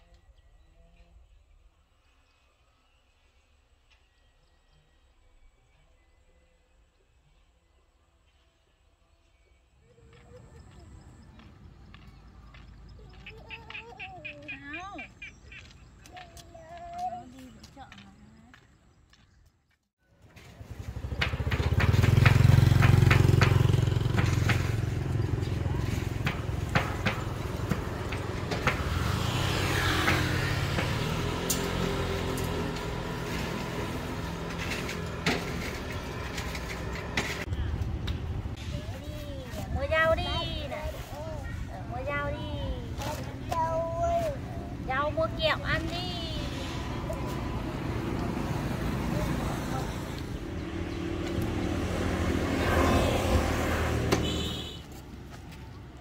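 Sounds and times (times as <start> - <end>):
traffic noise: 9.6 - 56.0
vehicle passing with low rumble: 20.2 - 56.0.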